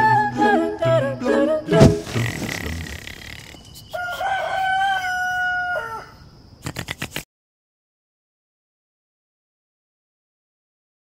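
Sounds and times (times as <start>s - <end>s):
rooster crowing: 3.9s - 6.2s.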